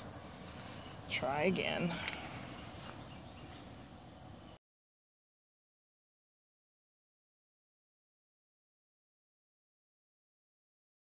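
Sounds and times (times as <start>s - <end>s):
outdoor background hiss: 0.0s - 4.6s.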